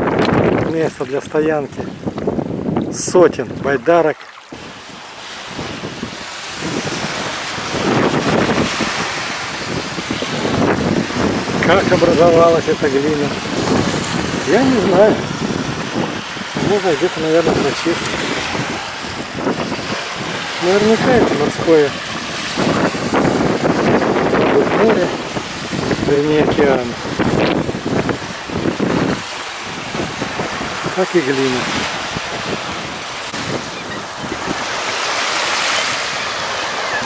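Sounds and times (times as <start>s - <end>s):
small waves lapping on shore: 0.0s - 37.0s
wind blowing across microphone: 0.0s - 37.0s.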